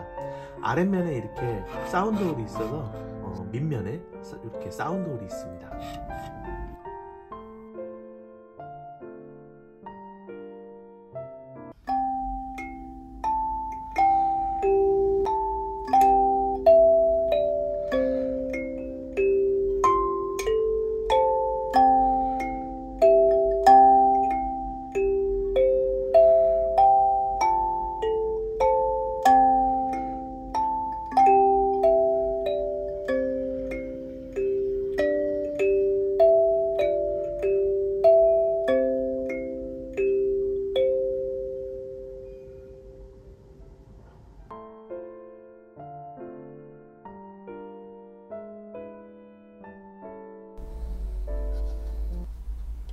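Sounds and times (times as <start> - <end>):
kalimba melody: 0.0 - 3.7, 11.7 - 42.5.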